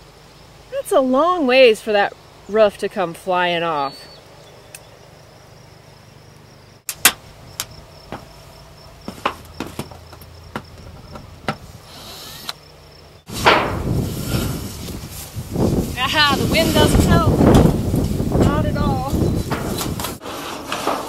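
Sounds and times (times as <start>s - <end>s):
wind buffeting microphone: 10.6s - 11.9s, 13.3s - 20.2s.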